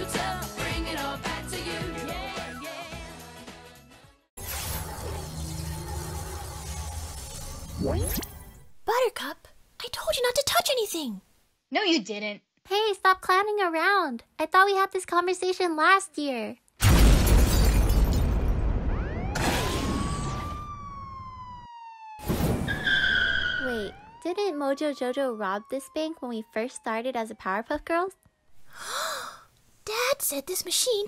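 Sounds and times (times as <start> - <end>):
background noise: 8.4 - 18.6, 22.7 - 31.0
cartoon blast rumble: 18.4 - 21.5.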